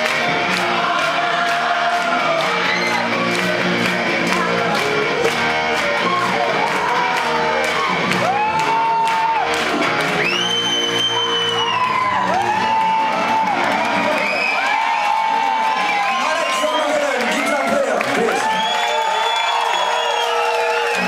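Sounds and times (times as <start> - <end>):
crowd cheering: 0.0 - 21.0
long whoops: 7.7 - 9.5, 10.2 - 16.5, 18.3 - 21.0.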